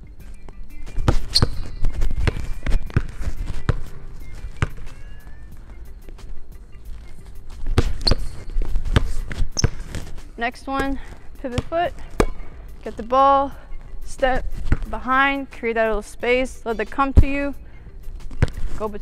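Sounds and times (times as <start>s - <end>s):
background music: 0.0s - 19.0s
shoe squeaks: 0.2s - 15.1s, 18.2s - 19.0s
basketball dribbling on gym floor: 0.9s - 5.0s, 7.6s - 10.1s, 11.5s - 12.4s, 14.5s - 15.0s, 18.4s - 18.8s.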